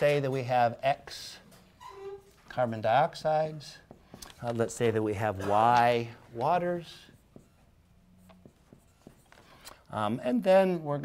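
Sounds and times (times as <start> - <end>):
marker writing on whiteboard: 3.6 - 9.9.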